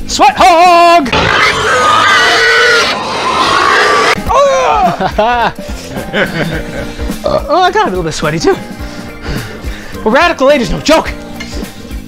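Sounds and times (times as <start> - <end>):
pig-like squealing and grunting: 1.1 - 4.8.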